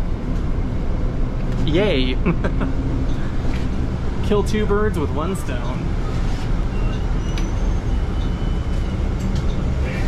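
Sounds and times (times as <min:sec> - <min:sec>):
bus cabin rumble: 0:00.0 - 0:10.0.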